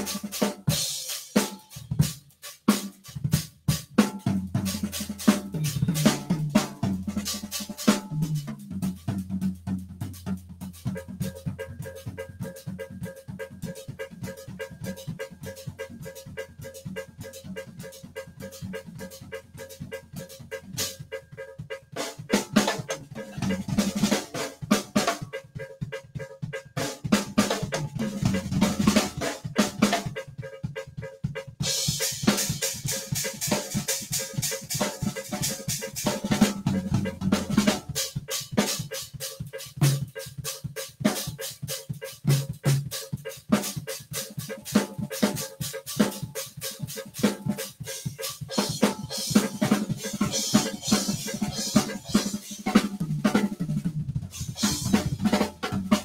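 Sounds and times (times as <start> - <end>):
cymbal and hi-hat wash: 0.0 - 25.3, 31.6 - 56.0
drum kit playing: 0.0 - 56.0.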